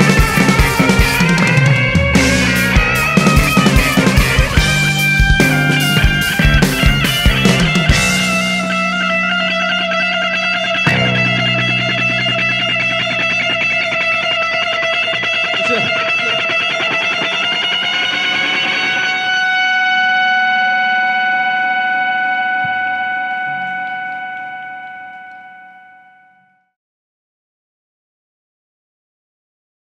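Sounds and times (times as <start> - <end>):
distorted electric guitar note ringing: 0.0 - 26.7.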